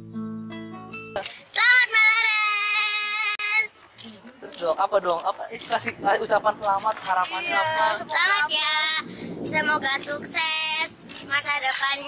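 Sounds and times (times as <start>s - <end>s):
girl singing long high note: 1.5s - 3.9s, 7.4s - 12.0s.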